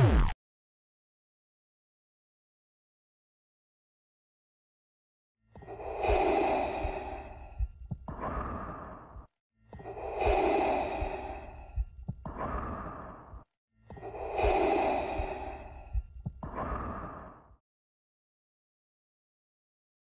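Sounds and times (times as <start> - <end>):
hissing respirator breathing: 5.6 - 17.6.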